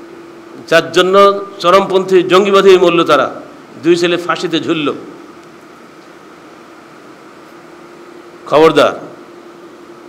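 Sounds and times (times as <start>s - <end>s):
faint room hum: 0.0s - 10.0s
man speaking into a microphone: 0.6s - 5.2s, 8.4s - 9.2s.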